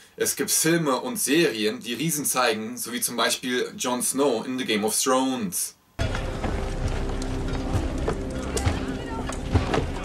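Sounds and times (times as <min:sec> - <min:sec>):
background music chord: 0:06.0 - 0:10.0
knocks and clatter: 0:06.0 - 0:10.0
low rumble: 0:06.0 - 0:10.0.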